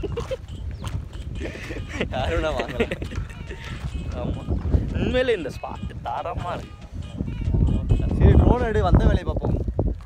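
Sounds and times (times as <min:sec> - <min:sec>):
men laughing: 0:00.0 - 0:06.1.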